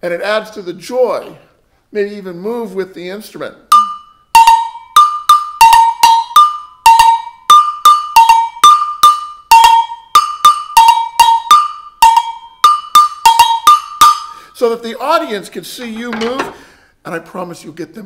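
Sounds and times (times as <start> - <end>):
agogo bell struck with stick: 3.7 - 14.3.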